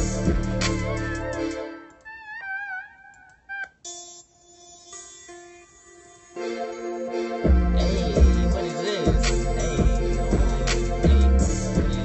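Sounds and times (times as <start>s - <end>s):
software instrument melody: 0.0s - 12.0s.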